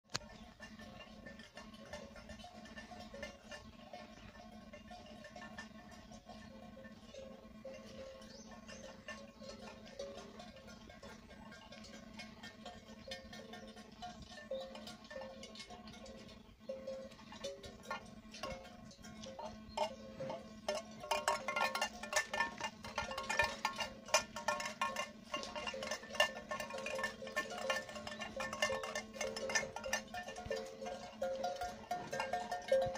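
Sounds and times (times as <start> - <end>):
cowbells clanking: 0.0 - 32.9
steady low hum: 0.1 - 32.9.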